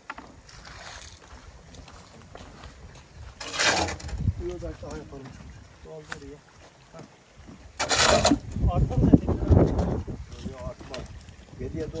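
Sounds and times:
shovel scraping wet concrete: 3.4s - 4.1s, 7.8s - 8.4s.

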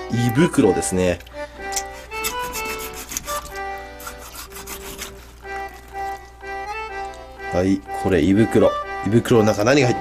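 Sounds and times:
background music with held notes: 0.0s - 10.0s
wet rubbing of fish innards: 1.6s - 7.5s.

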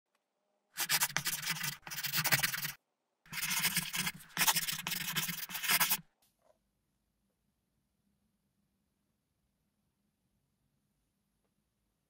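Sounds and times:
pen scratching on paper: 0.8s - 6.0s.

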